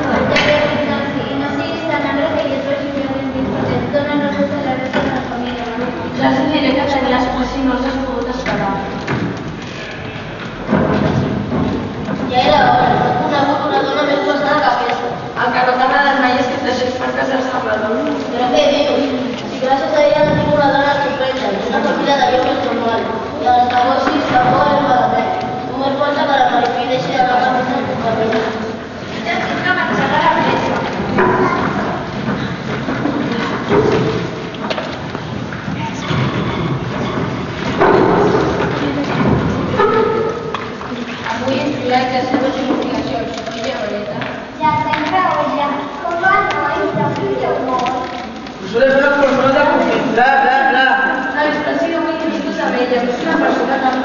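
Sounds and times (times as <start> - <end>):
children speaking: 0.0 - 54.0.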